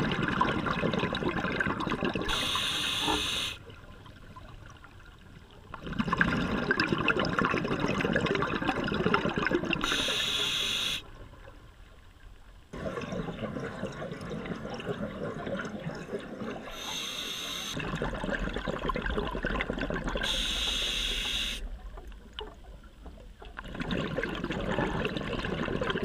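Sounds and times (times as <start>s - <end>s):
exhaled bubbles rushing: 0.0s - 2.6s, 5.7s - 10.2s, 12.7s - 17.0s, 17.7s - 20.5s, 23.5s - 26.0s
regulator inhalation hisses: 2.3s - 3.6s, 9.8s - 11.0s, 16.7s - 17.8s, 20.2s - 21.6s.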